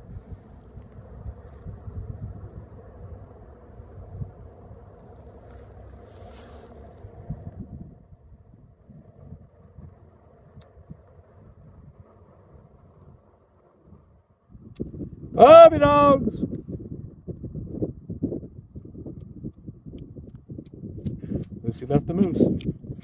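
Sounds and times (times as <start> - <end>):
wind buffeting microphone: 0.0 - 23.0.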